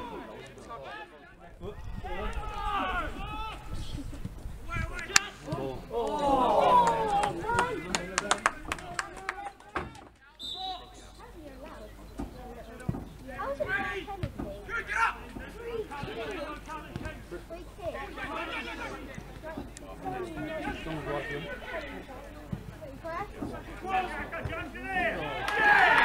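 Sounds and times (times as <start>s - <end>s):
distant players shouting: 4.7s - 11.1s, 13.4s - 19.3s, 23.4s - 26.0s
sharp claps: 6.8s - 10.0s.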